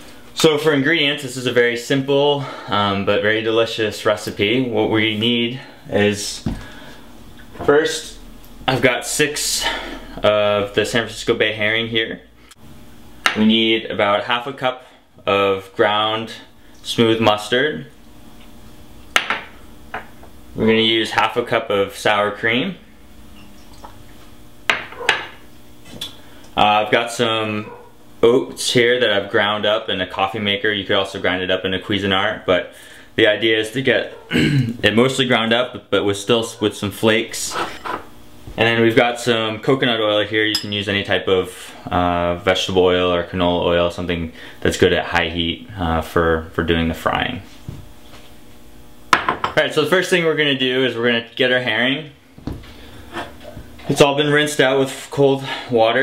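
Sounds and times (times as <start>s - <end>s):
bowls knocking on a tiled counter: 19.2s - 20.1s, 24.7s - 25.4s, 49.1s - 49.6s.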